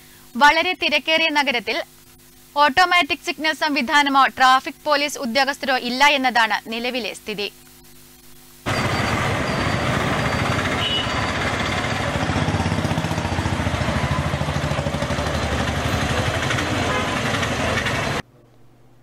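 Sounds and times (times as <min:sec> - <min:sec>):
vehicle engines passing close: 0:08.7 - 0:18.2.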